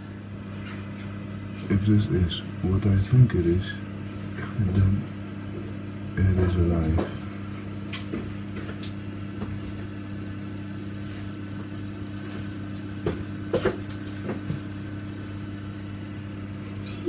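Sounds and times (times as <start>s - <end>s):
fan motor humming: 0.0s - 17.0s.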